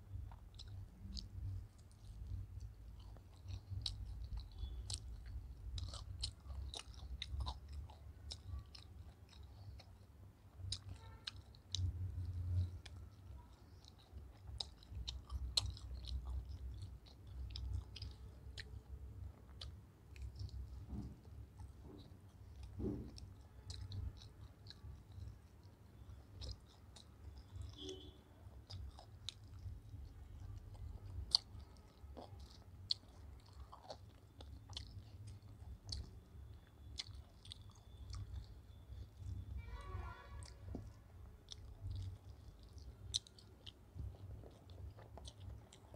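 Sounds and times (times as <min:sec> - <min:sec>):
low steady rumble: 0:00.0 - 0:45.9
chewing mouth clicks and smacks: 0:00.1 - 0:39.6, 0:40.4 - 0:45.9.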